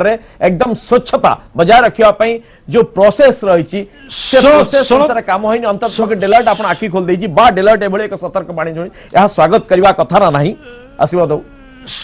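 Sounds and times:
man talking fast: 0:00.0 - 0:11.6.

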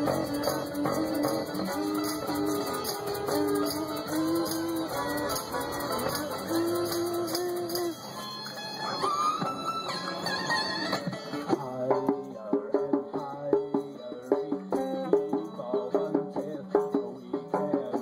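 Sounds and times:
djembe struck in quick rhythm: 0:00.0 - 0:07.9, 0:11.0 - 0:18.0
tambourine shaken: 0:00.0 - 0:08.4
acoustic guitars playing: 0:00.0 - 0:11.7.

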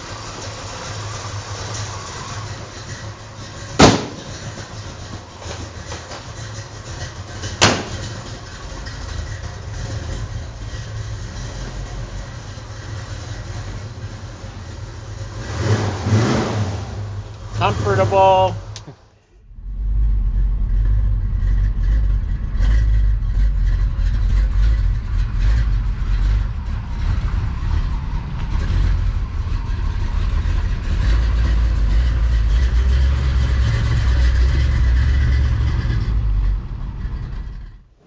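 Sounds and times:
truck engine rumbling past: 0:00.0 - 0:18.8, 0:19.5 - 0:38.0.

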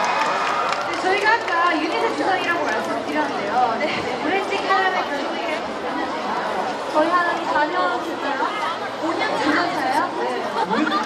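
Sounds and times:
voices chattering: 0:00.8 - 0:11.0
woman talking into a microphone: 0:00.9 - 0:10.6.

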